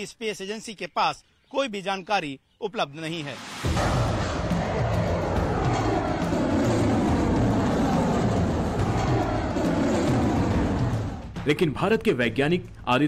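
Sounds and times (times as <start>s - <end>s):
rocket engines roaring: 3.5s - 11.4s.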